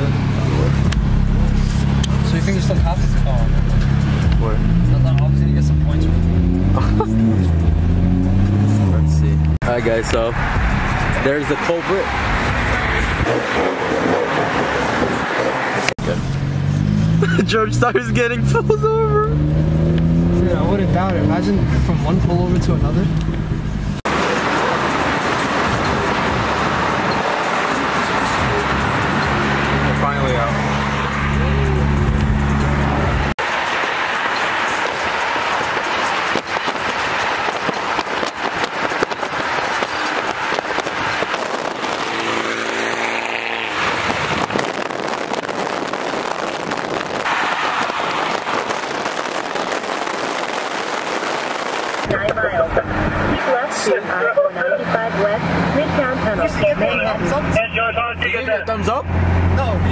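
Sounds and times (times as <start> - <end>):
car engine revving: 0.0 - 59.9
road and wind noise: 0.0 - 59.9.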